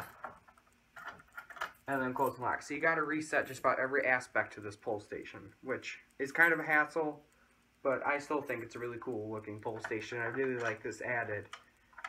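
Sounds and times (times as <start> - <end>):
faint plastic clicks: 5.3 - 12.0.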